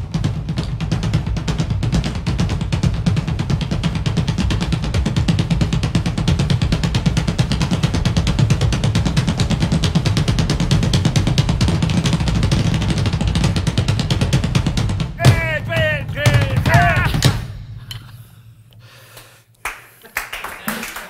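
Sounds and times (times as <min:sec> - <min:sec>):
drum kits playing fast: 0:00.0 - 0:18.4.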